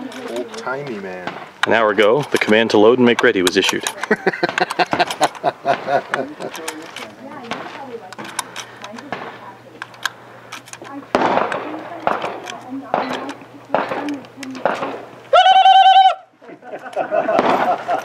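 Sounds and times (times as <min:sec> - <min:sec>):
sharp cracks: 0:00.0 - 0:16.0, 0:17.2 - 0:18.0
cartridges clicking into rifle: 0:01.6 - 0:05.5, 0:09.8 - 0:14.9.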